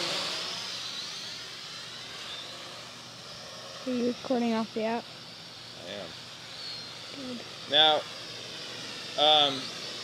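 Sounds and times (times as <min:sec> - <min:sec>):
drone propellers whirring: 0:00.0 - 0:10.0.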